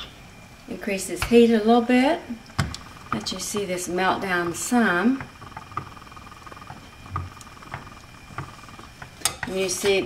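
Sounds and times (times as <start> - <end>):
faint steady hum: 0.0 - 10.0
water boiling with bubbling pops: 0.0 - 10.0.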